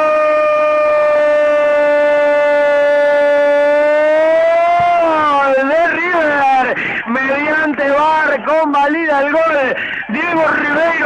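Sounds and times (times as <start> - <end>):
commentator shouting goal cry: 0.0 - 11.0.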